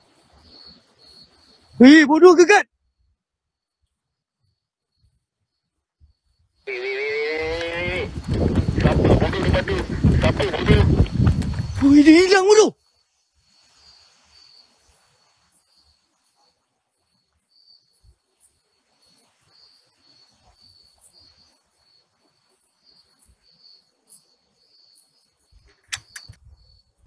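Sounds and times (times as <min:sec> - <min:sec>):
night insects chirping: 0:00.0 - 0:27.0
sharp clicks: 0:25.7 - 0:26.4.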